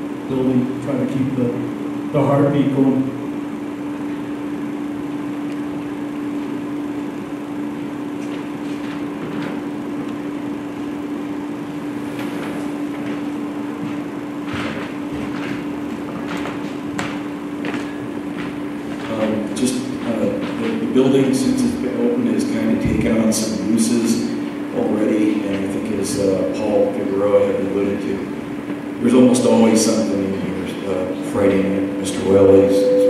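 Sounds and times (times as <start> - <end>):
steady hum: 0.0 - 33.0.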